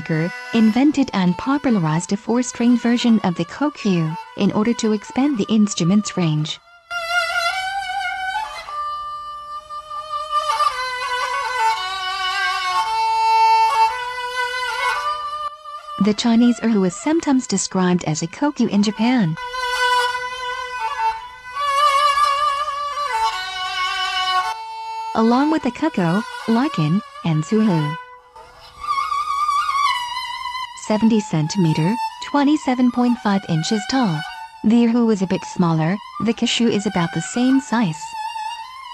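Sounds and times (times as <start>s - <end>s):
bowed string instrument melody: 0.0s - 38.9s.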